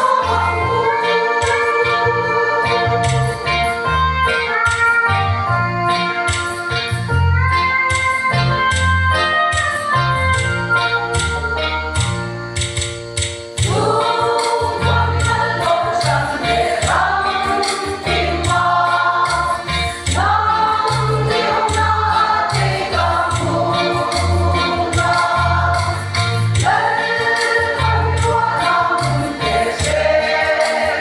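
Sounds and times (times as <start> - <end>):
women's choir singing a hymn: 0.0 - 3.0, 13.6 - 31.0
deep low drum beats: 20.1 - 26.9.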